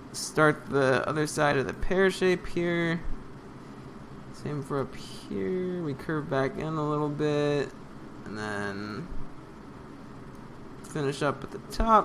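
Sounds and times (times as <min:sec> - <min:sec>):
room tone hiss: 0:00.0 - 0:12.0
man speaking: 0:00.1 - 0:03.1, 0:04.3 - 0:09.2, 0:10.8 - 0:12.0.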